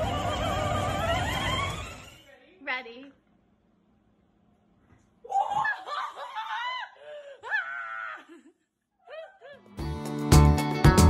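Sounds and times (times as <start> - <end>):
woman laughing in squeals: 5.2 - 9.7.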